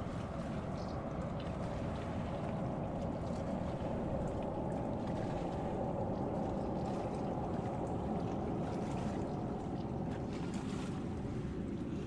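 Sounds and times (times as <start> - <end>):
small waves lapping: 0.0 - 12.0
wind rumble on microphone: 0.0 - 12.0.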